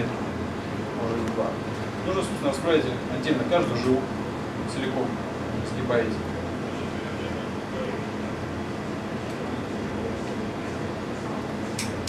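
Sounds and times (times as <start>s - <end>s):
low room hum with hiss: 0.0s - 12.0s.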